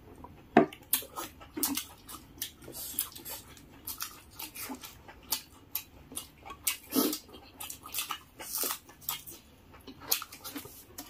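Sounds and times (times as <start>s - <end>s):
chewing and lip-smacking: 0.1s - 11.0s.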